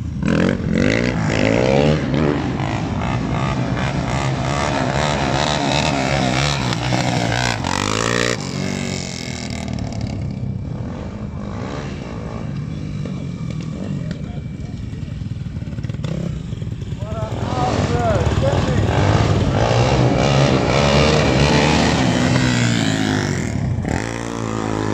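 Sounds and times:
motorcycle engines revving: 0.0 - 24.9
quad bike engine revving: 0.0 - 24.9.

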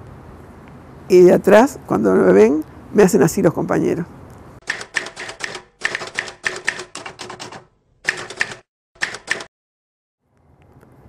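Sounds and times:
typewriter keystrokes: 4.6 - 9.5.

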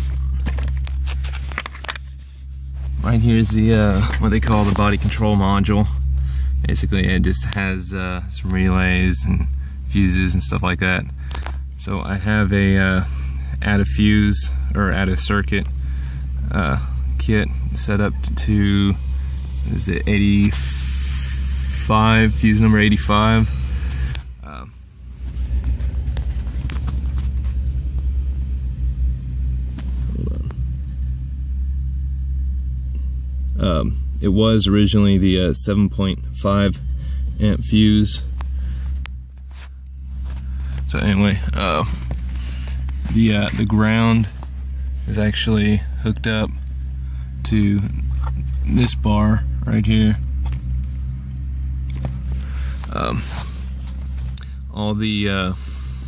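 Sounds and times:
car engine idling: 0.0 - 56.0
low-pitched hum: 0.0 - 56.0.

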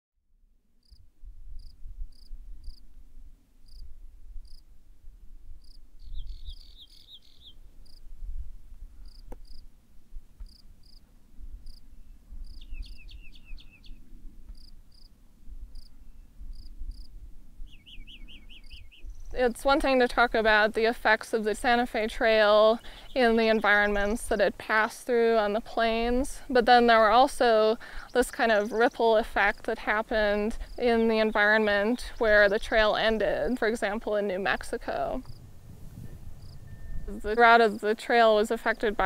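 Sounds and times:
low steady rumble: 32.2 - 37.9.

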